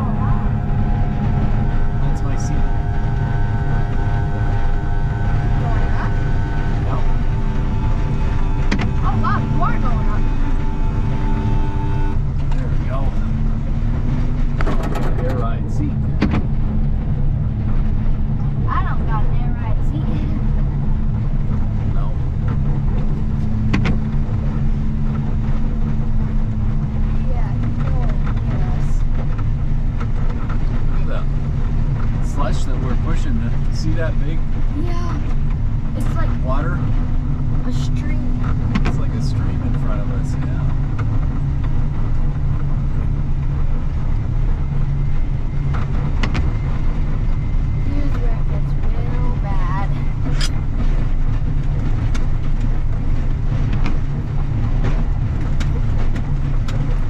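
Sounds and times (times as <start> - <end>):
snowplow engine rumbling: 0.0 - 57.0
steady whine: 0.0 - 57.0.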